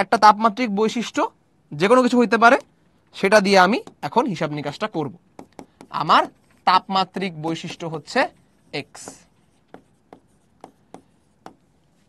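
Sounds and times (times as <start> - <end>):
pen writing on a screen: 2.5 - 12.0
stylus tapping on screen: 3.7 - 4.2, 4.8 - 6.6, 7.6 - 12.0.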